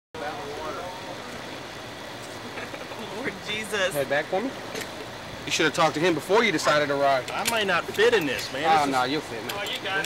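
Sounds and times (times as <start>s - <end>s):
outdoor background noise: 0.2s - 10.0s.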